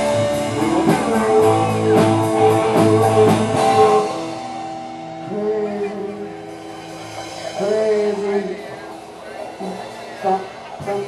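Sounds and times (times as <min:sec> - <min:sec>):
held vocal notes: 0:00.0 - 0:11.0.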